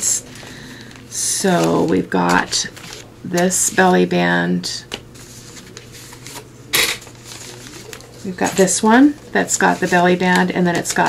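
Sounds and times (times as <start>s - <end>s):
paper rustling: 0.2s - 3.1s, 5.1s - 11.0s.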